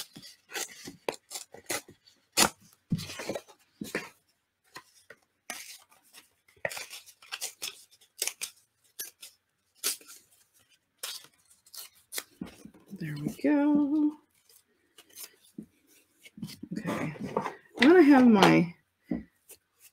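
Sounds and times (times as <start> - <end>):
paper rustling: 0.0 - 18.7
paper tearing: 11.0 - 12.4.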